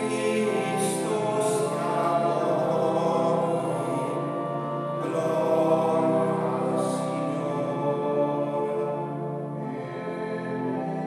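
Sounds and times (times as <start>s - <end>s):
church music with held chords: 0.0s - 11.0s
voices singing: 0.0s - 11.0s.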